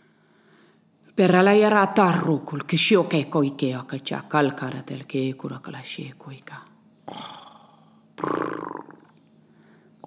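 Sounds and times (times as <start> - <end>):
person making guttural vocal sound: 7.1 - 9.1.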